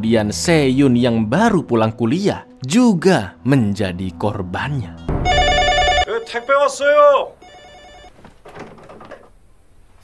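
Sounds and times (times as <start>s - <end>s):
electronic telephone ringing: 5.2s - 6.6s, 7.4s - 8.2s.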